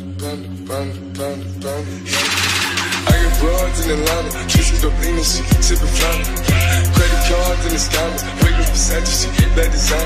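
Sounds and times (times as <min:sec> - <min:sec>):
held bass: 0:01.8 - 0:10.0.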